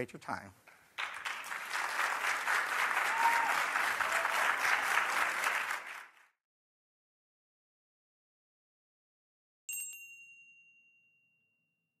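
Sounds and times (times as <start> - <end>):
high bell-like chime: 9.7 - 11.9.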